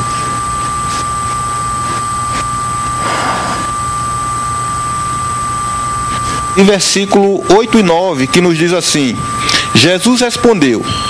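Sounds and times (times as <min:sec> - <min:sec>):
broadcast line hiss: 0:00.0 - 0:11.0
high whine: 0:00.0 - 0:11.0.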